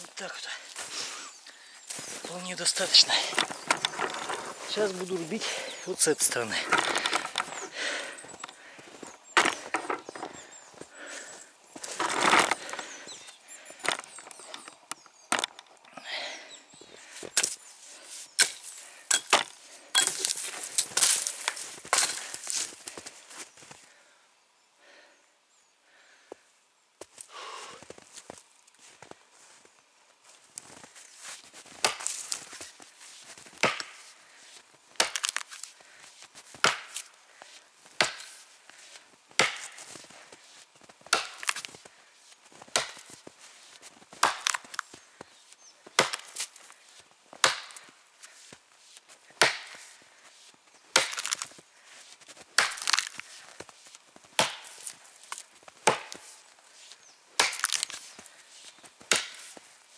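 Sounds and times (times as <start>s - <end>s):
axe chopping tree trunk: 9.4s - 10.0s, 18.4s - 22.2s, 31.8s - 32.2s, 33.6s - 34.0s, 35.0s - 35.5s, 36.6s - 37.1s, 38.0s - 38.4s, 39.4s - 39.9s, 41.0s - 41.7s, 42.7s - 43.2s, 44.2s - 44.8s, 46.0s - 46.5s, 47.4s - 47.9s, 49.4s - 50.0s, 50.9s - 51.5s, 52.5s - 53.2s, 54.4s - 55.0s, 55.8s - 56.3s, 57.4s - 58.0s, 59.1s - 59.6s.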